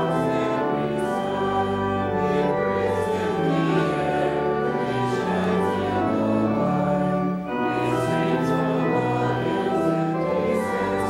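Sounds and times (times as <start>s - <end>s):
hymn singing: 0.0s - 11.0s
organ chords: 0.0s - 11.0s.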